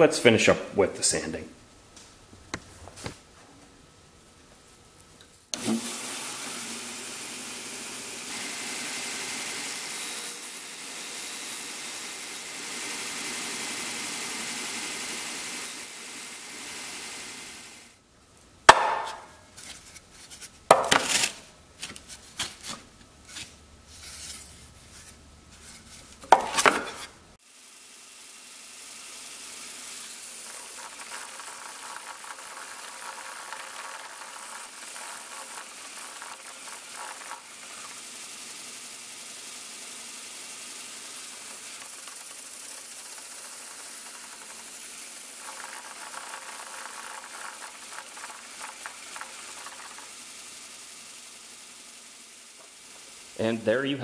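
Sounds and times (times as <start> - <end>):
sharp wooden knocks: 18.7 - 19.3.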